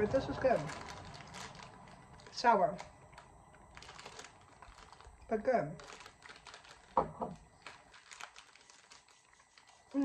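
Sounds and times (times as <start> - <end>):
people chewing candy: 0.7 - 10.0.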